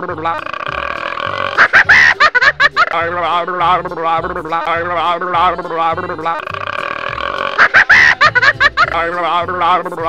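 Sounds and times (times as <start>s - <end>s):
pitch-sliding cartoon vocal effects: 0.0s - 2.2s, 2.9s - 10.0s
pulsing bass line: 0.0s - 10.0s.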